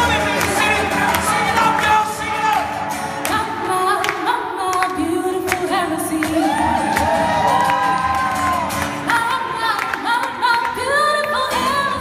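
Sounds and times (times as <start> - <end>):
gospel choir singing: 0.0 - 2.2
lead singer: 0.0 - 12.0.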